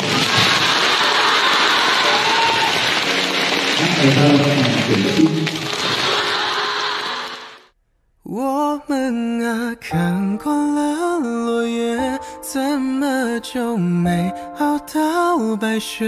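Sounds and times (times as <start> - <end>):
crowd applause: 0.0 - 7.7
man speaking over microphone: 3.8 - 5.7.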